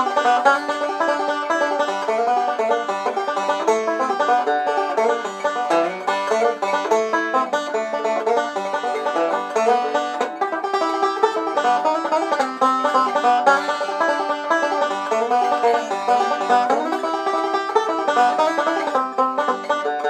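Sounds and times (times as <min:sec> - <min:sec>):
banjo picking fast notes: 0:00.0 - 0:20.0.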